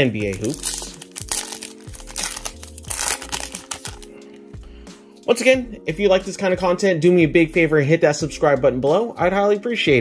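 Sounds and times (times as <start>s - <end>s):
plastic wrapper crinkling: 0.0s - 4.1s.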